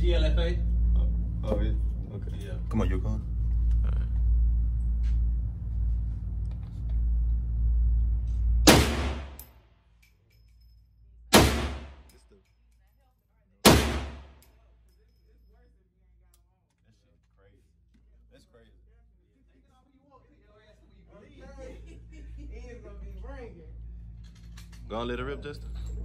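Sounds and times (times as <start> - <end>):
steady low rumble: 0.0 - 9.5
rifle shots echoing indoors: 8.6 - 9.5, 11.3 - 12.1, 13.6 - 14.5.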